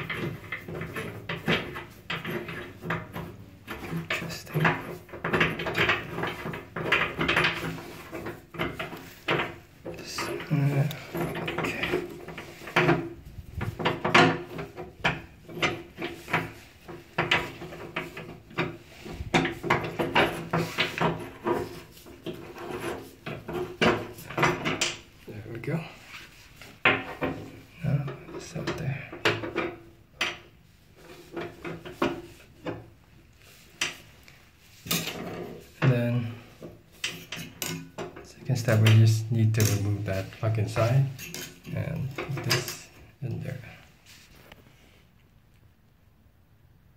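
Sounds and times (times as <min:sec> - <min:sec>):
metal drain stopper clicking and knocking: 0:00.0 - 0:10.0
metal threads scraping and creaking: 0:00.0 - 0:45.0.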